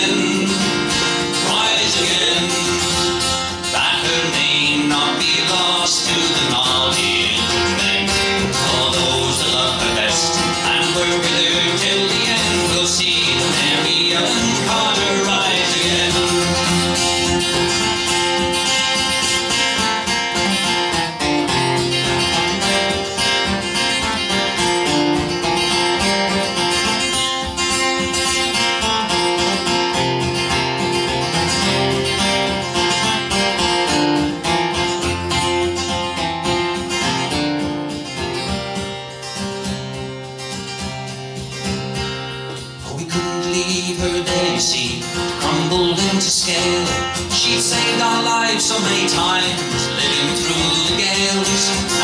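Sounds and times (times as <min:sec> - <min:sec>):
acoustic guitar picking: 0:00.0 - 0:52.0.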